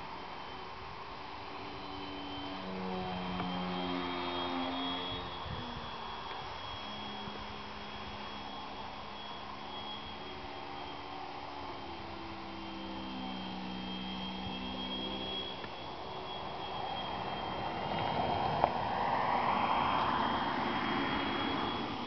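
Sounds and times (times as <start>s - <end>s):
model plane motor whining: 0.0s - 22.0s.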